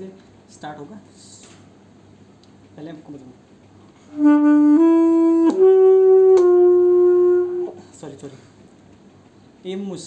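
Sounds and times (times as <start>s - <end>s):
saxophone holding notes: 4.0s - 8.0s.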